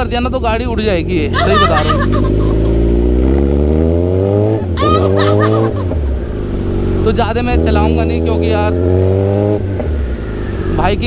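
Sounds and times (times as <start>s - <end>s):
motorcycle engine accelerating hard: 0.0s - 11.0s.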